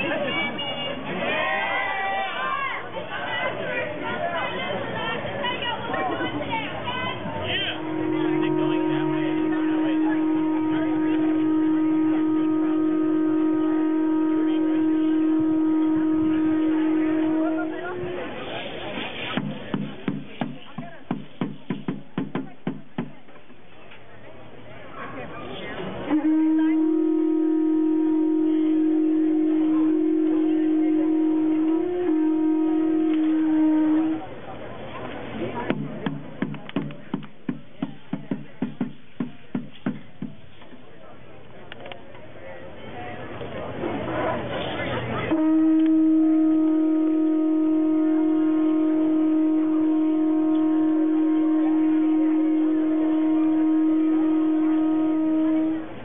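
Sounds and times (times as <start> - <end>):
conch shell trumpet note: 6.9 - 18.6, 26.0 - 34.4, 45.3 - 56.0.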